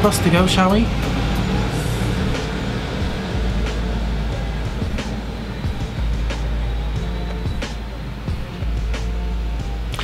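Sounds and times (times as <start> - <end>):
bus engine rumbling: 0.0 - 10.0.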